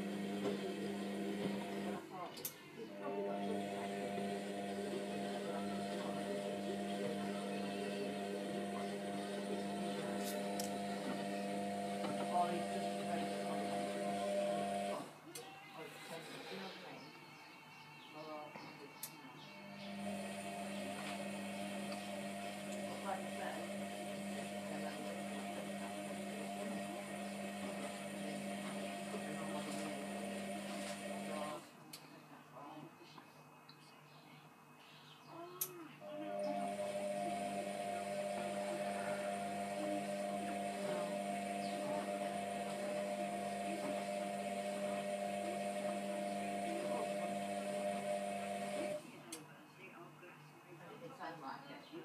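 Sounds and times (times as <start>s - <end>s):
washing machine drum humming: 0.0s - 2.0s, 3.3s - 15.0s, 19.9s - 31.6s, 36.3s - 49.0s.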